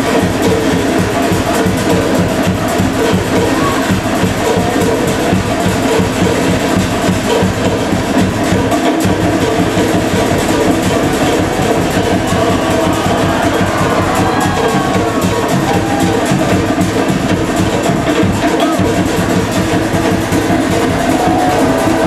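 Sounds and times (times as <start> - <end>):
fast show music with rapid drumming: 0.0 - 22.0.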